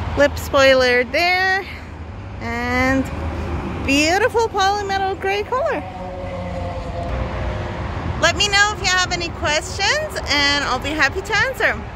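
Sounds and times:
traffic rumble: 0.0 - 11.9.

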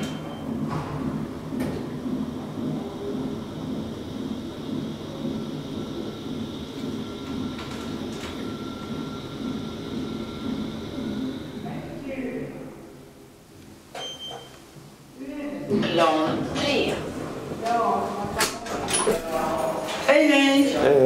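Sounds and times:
elevator ride rumble: 0.0 - 13.1, 15.6 - 21.0
thin steady whine: 0.0 - 14.4.

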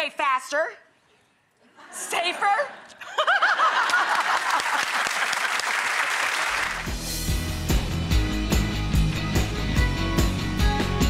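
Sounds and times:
audience applauding: 3.6 - 7.0
music with bass and beat: 6.9 - 11.0.

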